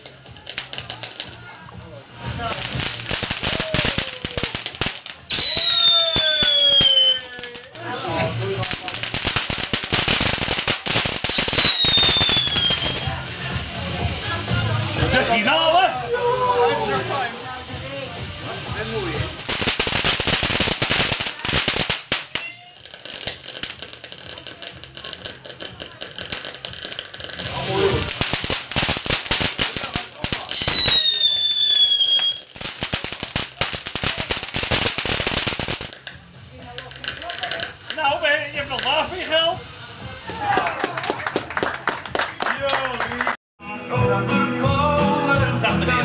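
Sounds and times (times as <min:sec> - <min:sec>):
firework crackling: 0:00.0 - 0:43.4
falling firework whistle: 0:05.3 - 0:07.5, 0:11.2 - 0:13.2, 0:30.5 - 0:32.6.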